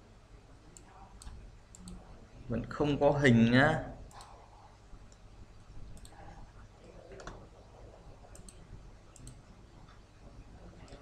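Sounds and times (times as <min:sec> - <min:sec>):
computer mouse clicks: 0:00.8 - 0:02.0, 0:04.1 - 0:04.4, 0:05.9 - 0:06.3, 0:08.2 - 0:09.5.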